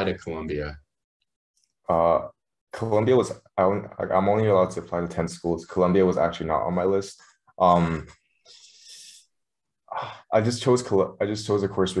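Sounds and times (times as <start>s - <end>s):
person breathing in: 8.4s - 9.2s.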